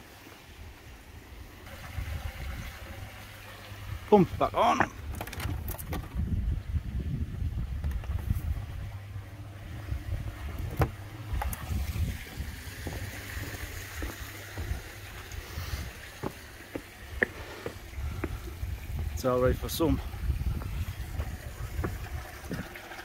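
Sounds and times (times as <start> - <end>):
waterfall splashing into pond: 1.6 - 5.1, 20.3 - 23.0
wind buffeting microphone: 1.7 - 3.1, 3.8 - 23.0.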